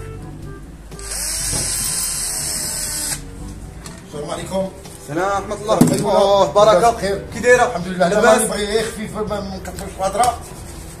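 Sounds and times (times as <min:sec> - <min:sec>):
cordless drill whining into wood: 0:01.0 - 0:03.2.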